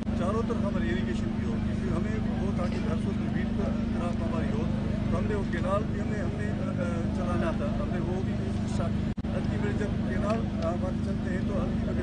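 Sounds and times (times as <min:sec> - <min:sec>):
loud low hum: 0:00.0 - 0:12.0
man talking: 0:00.0 - 0:12.0.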